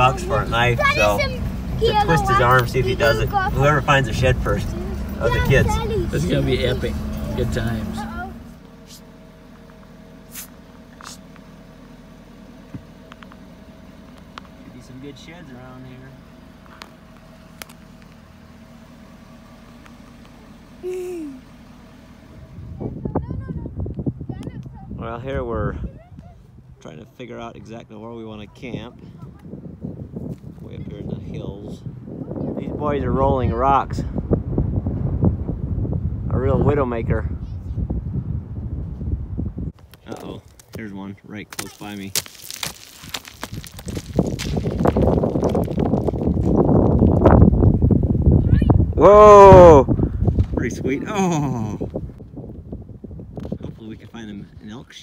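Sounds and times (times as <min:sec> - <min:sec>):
vehicle engine humming: 0:00.0 - 0:55.0
rock tumbling down hillside: 0:39.8 - 0:40.8, 0:41.5 - 0:47.3.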